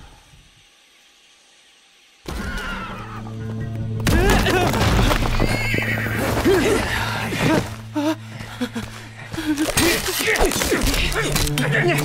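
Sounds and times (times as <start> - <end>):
music: 2.3 - 12.0.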